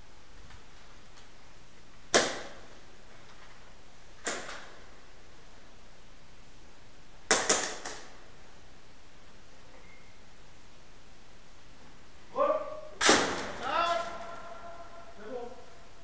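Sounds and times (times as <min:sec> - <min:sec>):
airsoft gun shots: 0:02.1 - 0:02.7, 0:04.2 - 0:04.8, 0:07.3 - 0:08.1, 0:13.0 - 0:14.2.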